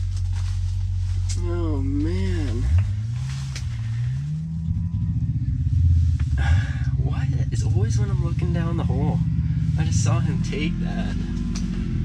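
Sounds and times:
engine running: 0:00.0 - 0:12.0.

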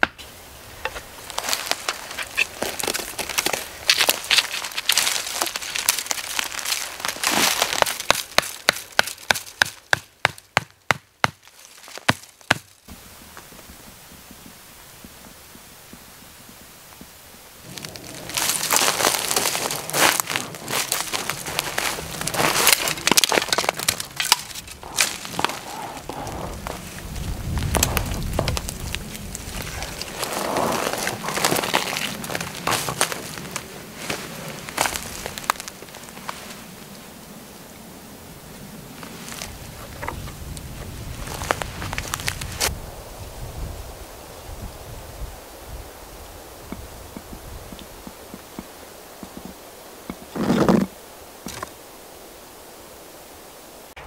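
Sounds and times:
rustling pine branches: 0:00.0 - 0:54.0
stiff tarp crackling: 0:00.7 - 0:13.0, 0:17.6 - 0:36.8, 0:38.9 - 0:42.8.

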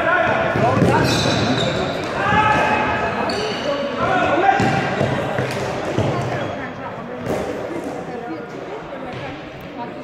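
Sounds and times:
sneakers squeaking on floor: 0:00.6 - 0:04.0, 0:04.6 - 0:07.5.

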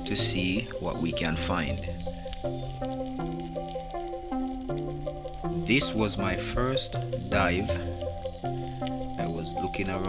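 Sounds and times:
man narrating: 0:00.0 - 0:02.0, 0:05.6 - 0:08.0, 0:09.1 - 0:10.0
background music with held chords: 0:00.0 - 0:10.0.

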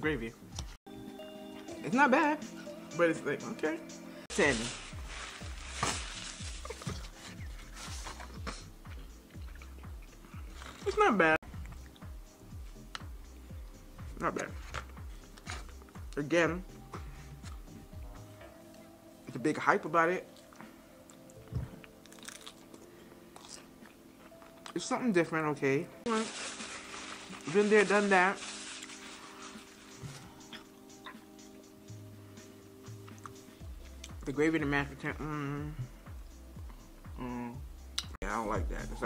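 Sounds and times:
light background music: 0:00.0 - 0:39.0
person chewing food: 0:06.5 - 0:10.9, 0:20.3 - 0:24.8.

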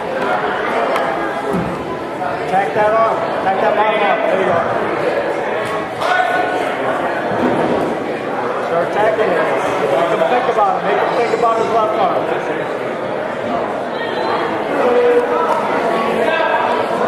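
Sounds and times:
people shouting and talking: 0:00.0 - 0:17.0.

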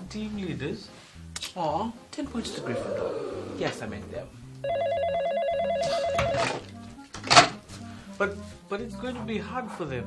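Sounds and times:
telephone ringing with warbling trill: 0:04.6 - 0:06.6.

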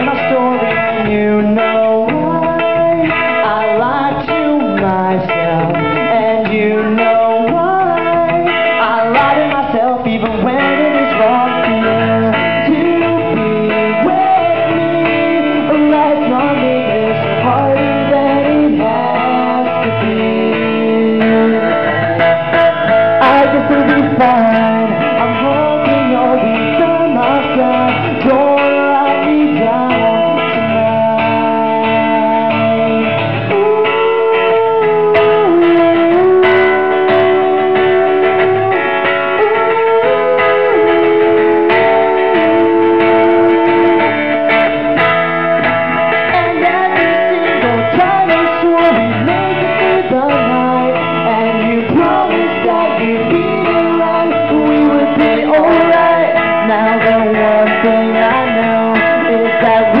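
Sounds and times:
acoustic guitar: 0:00.0 - 1:00.0
man singing: 0:00.0 - 1:00.0.

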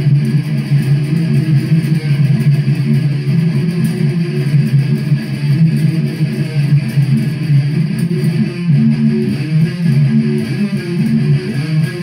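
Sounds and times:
distorted electric guitar riff: 0:00.0 - 0:12.0.

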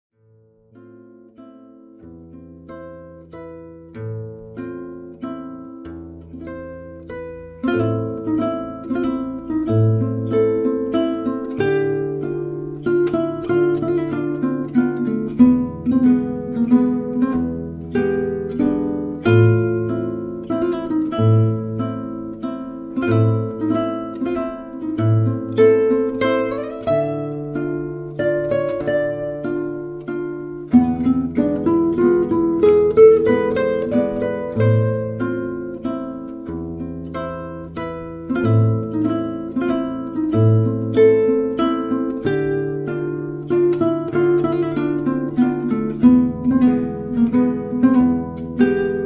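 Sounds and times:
plucked string music over bass: 0:00.4 - 0:49.0.

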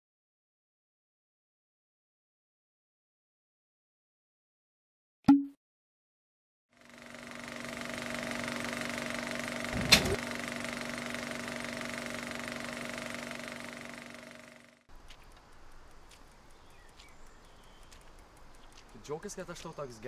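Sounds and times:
film projector whirring: 0:06.8 - 0:20.0.

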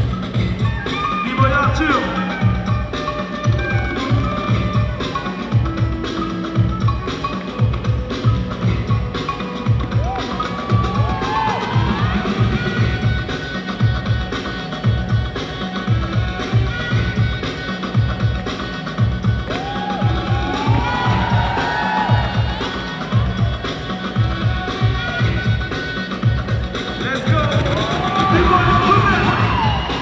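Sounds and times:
dance music with heavy beat: 0:00.0 - 0:30.0.

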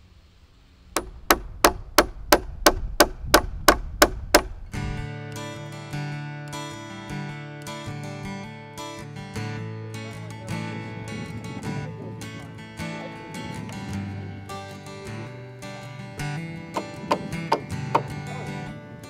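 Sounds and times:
hammer striking timber: 0:01.0 - 0:04.6, 0:16.8 - 0:18.2
acoustic guitar music: 0:03.5 - 0:19.0.

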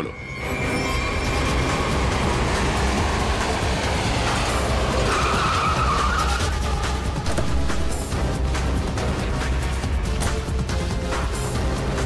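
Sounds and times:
tyres on road: 0:00.0 - 0:12.0
car engine running: 0:01.0 - 0:12.0
tyre squeal: 0:05.0 - 0:06.9.

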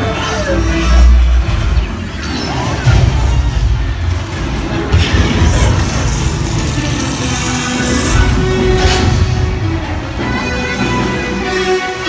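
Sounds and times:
deep rumbling battle effects: 0:00.0 - 0:12.0
dramatic music: 0:00.0 - 0:12.0
hissing rush: 0:04.0 - 0:10.4.

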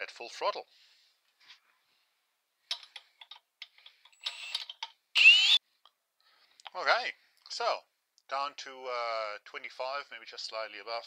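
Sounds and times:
power drill running: 0:04.2 - 0:05.6.

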